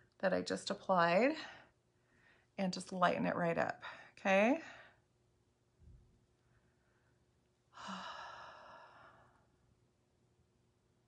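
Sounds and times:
woman sighing: 7.8s - 9.1s.

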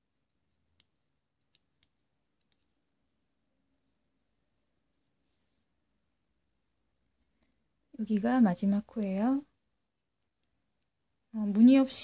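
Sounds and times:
knitting needles tapping: 0.0s - 3.4s, 7.2s - 11.8s.

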